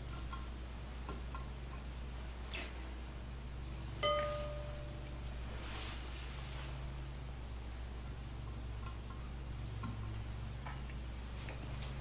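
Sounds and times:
glass bowl struck ringing: 0:04.0 - 0:05.2.

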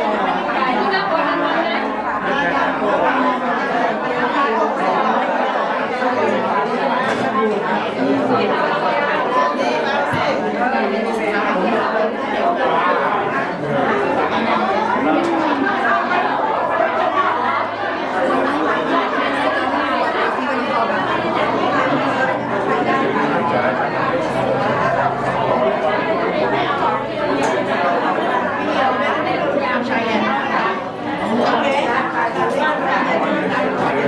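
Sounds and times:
crowd talking in a hall: 0:00.0 - 0:34.0.

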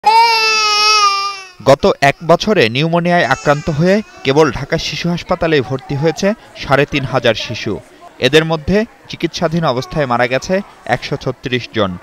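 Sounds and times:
infant crying: 0:00.0 - 0:01.6, 0:03.2 - 0:04.6.

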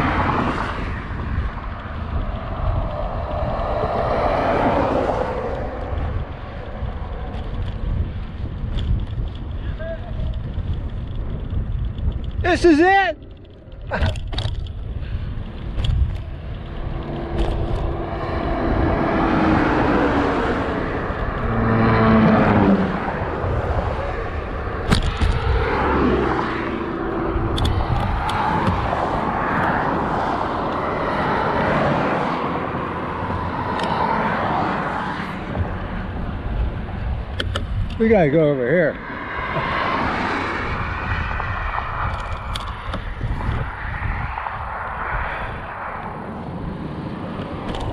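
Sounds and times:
vehicle passing by: 0:00.0 - 0:09.6, 0:14.8 - 0:37.4, 0:38.0 - 0:47.9
road traffic: 0:00.0 - 0:47.9
wind rumbling on microphone: 0:00.0 - 0:47.9.

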